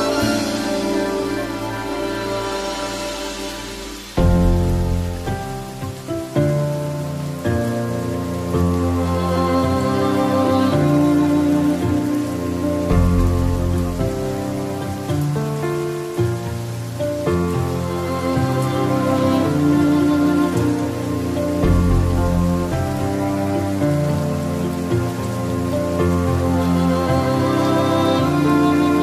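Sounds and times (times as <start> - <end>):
calm instrumental music: 0.0 - 29.0
steady rain: 0.0 - 29.0.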